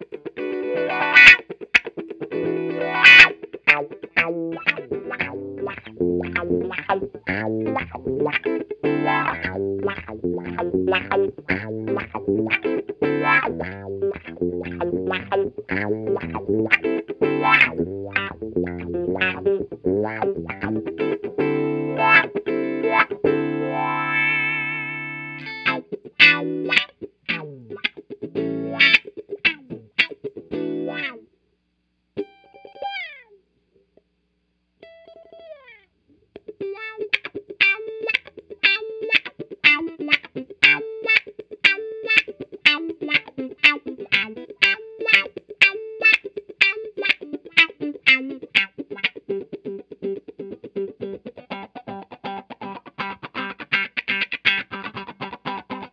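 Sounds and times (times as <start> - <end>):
electric guitar through wah pedal: 0.0 - 31.2, 32.2 - 33.4, 34.8 - 55.9.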